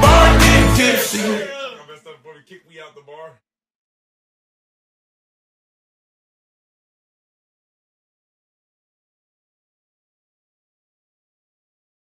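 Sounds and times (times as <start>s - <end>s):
band music: 0.0s - 1.4s.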